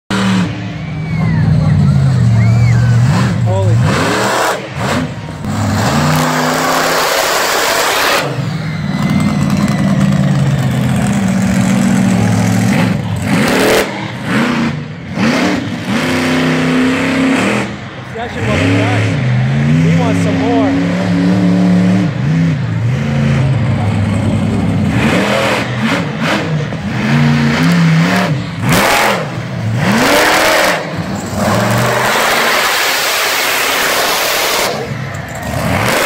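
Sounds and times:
truck engine revving hard: 0:00.1 - 0:36.0.

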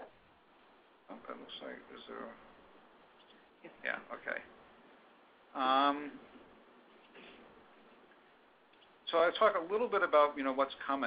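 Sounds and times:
faint line hiss: 0:00.0 - 0:11.0.

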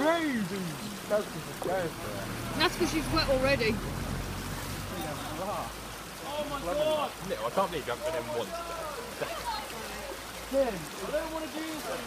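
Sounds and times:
river water rushing over stones: 0:00.0 - 0:12.0.

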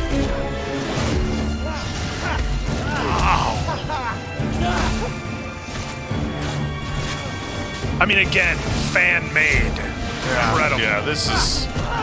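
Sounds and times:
dramatic orchestral music: 0:00.0 - 0:12.0.

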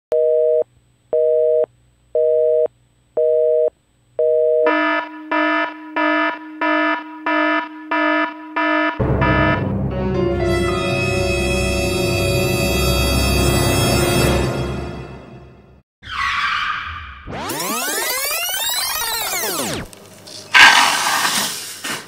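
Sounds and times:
music: 0:09.0 - 0:15.8
buzzy electronic beep: 0:16.9 - 0:19.9.

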